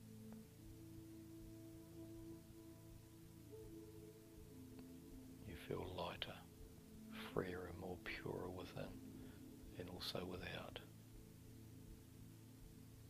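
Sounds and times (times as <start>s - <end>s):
soft sustained background music: 0.0s - 13.0s.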